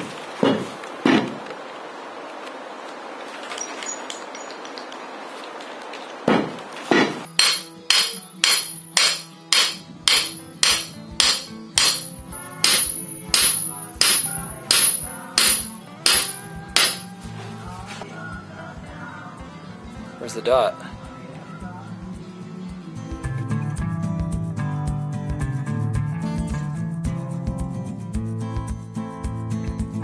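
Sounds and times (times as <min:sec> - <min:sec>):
hammer striking metal stake: 0:06.3 - 0:17.2.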